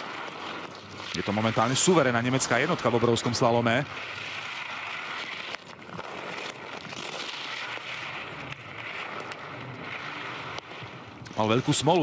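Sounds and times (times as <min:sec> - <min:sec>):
skis scraping on snow: 0:00.0 - 0:12.0.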